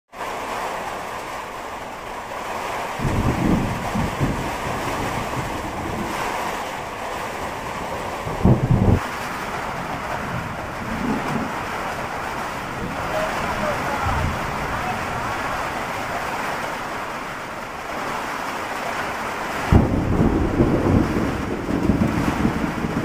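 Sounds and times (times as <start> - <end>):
wind against tin house: 0.1 - 23.0
low rumbling gusts: 1.6 - 23.0.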